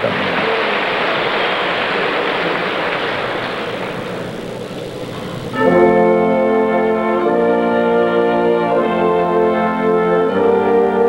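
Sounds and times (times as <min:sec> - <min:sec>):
audience applause: 0:00.0 - 0:05.8
orchestra playing loud held chord: 0:05.5 - 0:11.0.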